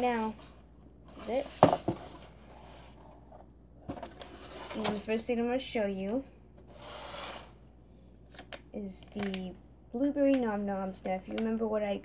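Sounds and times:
woman speaking: 0.0s - 0.4s, 1.2s - 1.6s, 4.8s - 6.3s, 8.8s - 12.0s.

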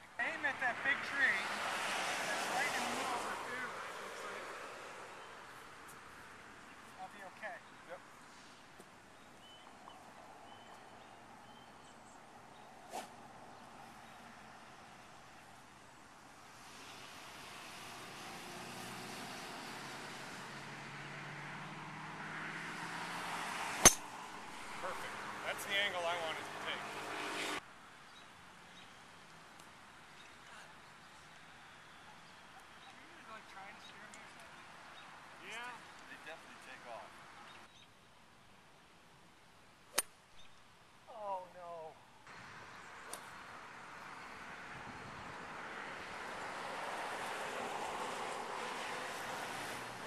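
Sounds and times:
car passing on road: 0.2s - 27.7s, 42.2s - 50.0s
golf club striking ball: 23.8s - 24.2s, 39.9s - 40.2s, 43.1s - 43.4s.

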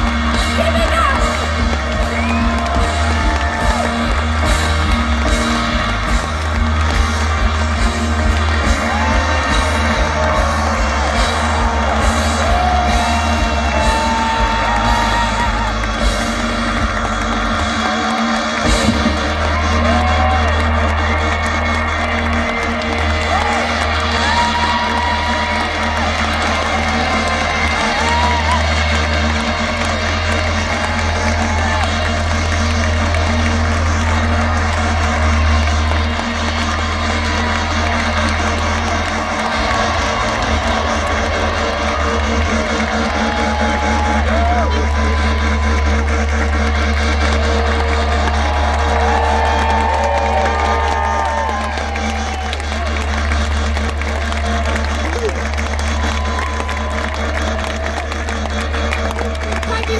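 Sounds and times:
crowd noise: 0.0s - 59.9s.

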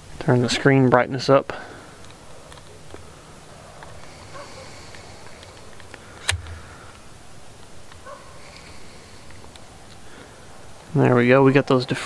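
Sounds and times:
faint camera clicks: 4.9s - 6.8s
sharp click with low thump: 6.2s - 6.8s.

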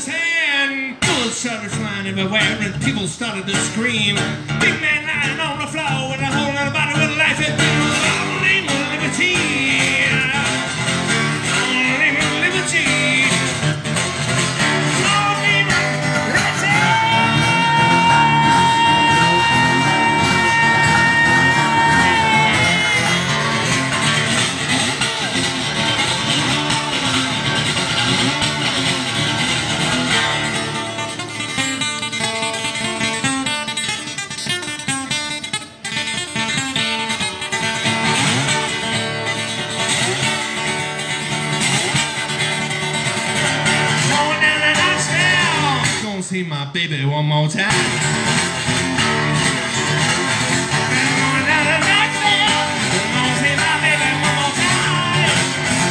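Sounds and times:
acoustic guitar strummed hard: 0.0s - 46.2s, 47.6s - 55.9s.

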